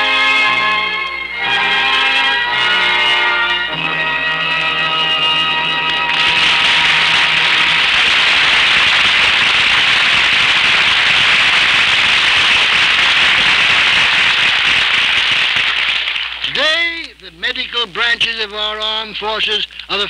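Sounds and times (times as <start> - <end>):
orchestral music: 0.0 - 9.8
audience applause: 4.6 - 16.7.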